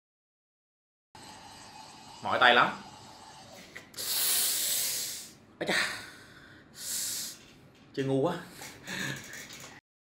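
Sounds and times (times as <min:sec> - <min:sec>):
person breathing out hard: 0:04.0 - 0:05.4, 0:08.6 - 0:09.4.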